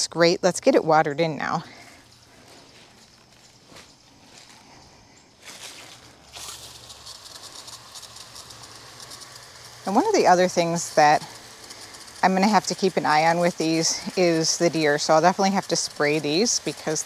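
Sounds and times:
hose spraying water on leaves: 5.4 - 17.0.

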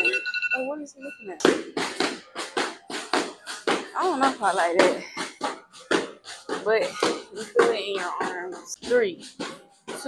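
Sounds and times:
battle ropes slapping floor: 1.4 - 10.0
woman speaking: 3.9 - 5.2, 6.5 - 10.0.

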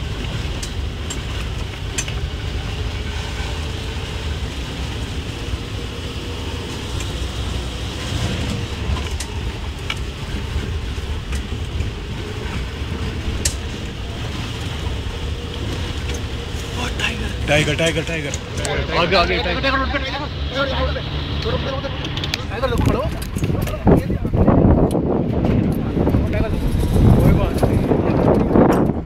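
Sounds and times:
vehicle clicks and rattles: 0.0 - 19.4, 21.4 - 29.0
vehicle engine and road rumble: 0.0 - 29.0.

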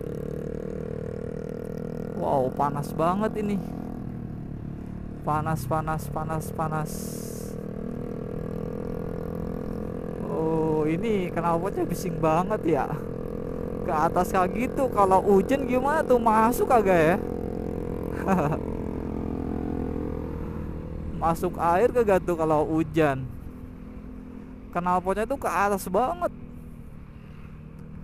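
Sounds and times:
loud motorcycle exhaust: 0.0 - 4.2, 6.9 - 11.3, 12.3 - 21.2
motorcycle engines running: 0.0 - 28.0.

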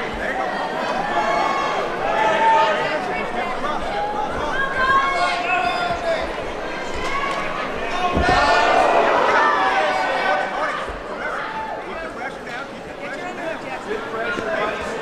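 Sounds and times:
voices shouting: 0.4 - 11.9.

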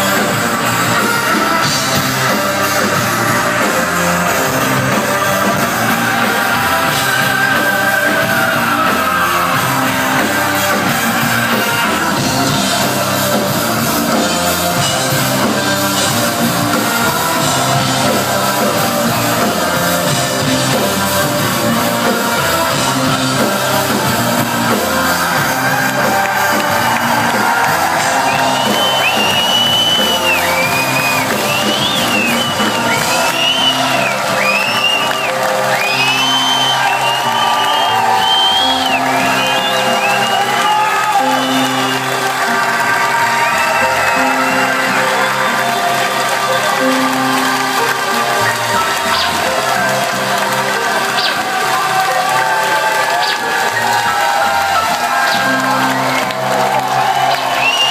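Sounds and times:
crowd cheering: 0.0 - 57.9
live band playing synth music: 0.0 - 57.9
shrill whistles: 28.0 - 42.0, 55.3 - 57.9.

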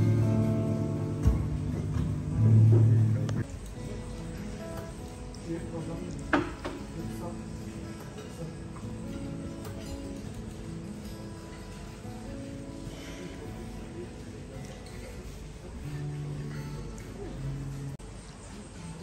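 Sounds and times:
acoustic guitar: 0.0 - 19.0.

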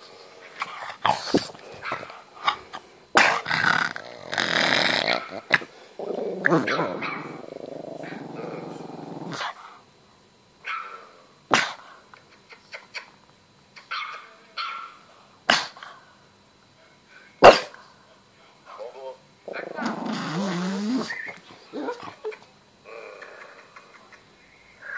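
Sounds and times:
dog growling low: 0.6 - 2.6, 3.2 - 9.6, 19.5 - 23.7
dog barking sharply: 17.4 - 17.7.

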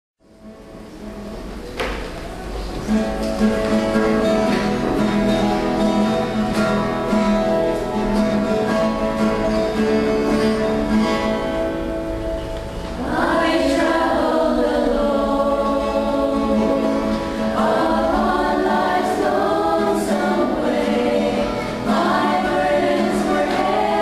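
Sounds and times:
mixed choir singing gospel: 12.9 - 24.0.

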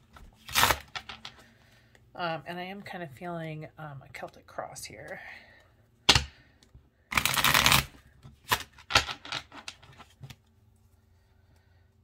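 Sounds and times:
cards being shuffled: 0.0 - 1.4, 7.1 - 10.4.

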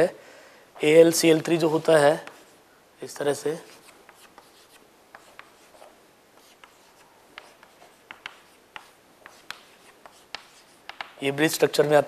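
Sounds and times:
chalk writing on chalkboard: 3.6 - 11.2.

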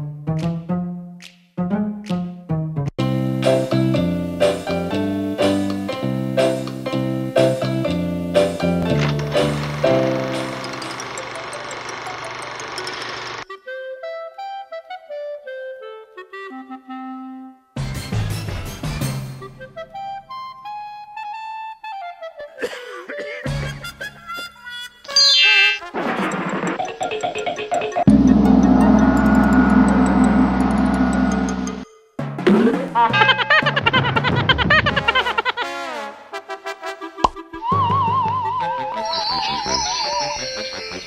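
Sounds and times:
film projector running: 9.1 - 13.4
low ringing note: 28.1 - 31.8.

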